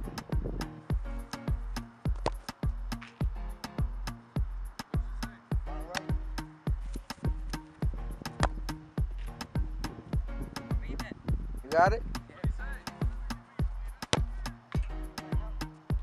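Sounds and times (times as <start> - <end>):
music with steady drum beat: 0.0 - 16.0.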